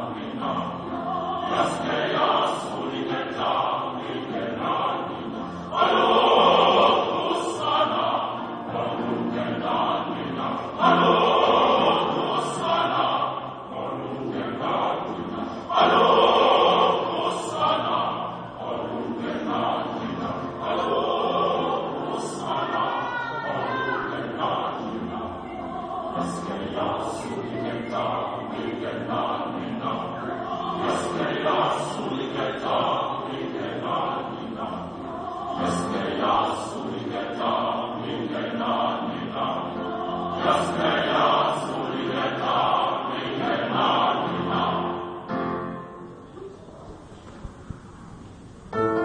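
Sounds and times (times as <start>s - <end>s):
large choir singing: 0.0s - 46.4s.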